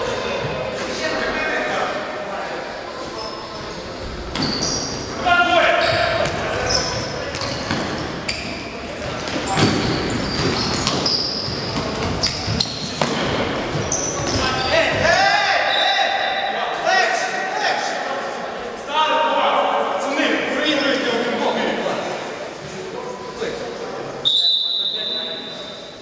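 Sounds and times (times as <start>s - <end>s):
sneakers squeaking: 3.1s - 16.5s
players shouting: 14.0s - 21.2s.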